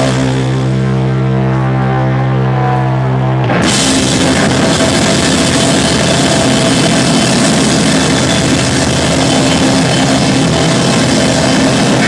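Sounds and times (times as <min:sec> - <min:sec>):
bass guitar: 0:00.0 - 0:12.0
distorted electric guitar: 0:00.0 - 0:12.0.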